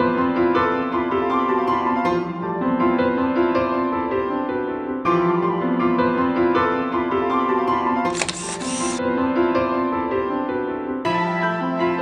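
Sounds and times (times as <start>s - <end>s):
gentle piano music: 0.0s - 8.2s, 9.0s - 12.0s
camera shutter click: 8.1s - 9.0s.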